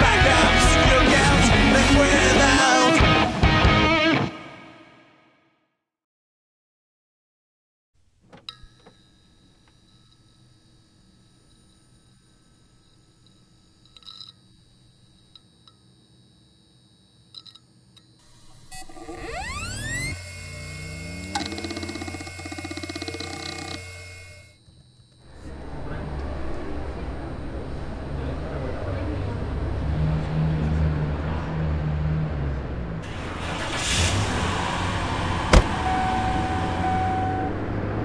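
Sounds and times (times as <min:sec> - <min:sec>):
loud pulsing electronic buzz: 0:09.0 - 0:30.6
rising electronic sweep: 0:18.5 - 0:22.8.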